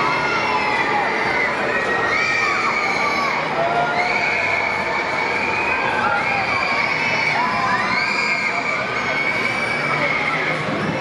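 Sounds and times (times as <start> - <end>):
riders screaming and shouting: 0.0 - 11.0.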